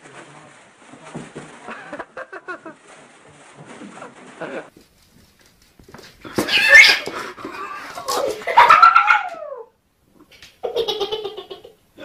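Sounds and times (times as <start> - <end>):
kitten yowling and meowing: 6.4 - 8.0, 8.6 - 9.7.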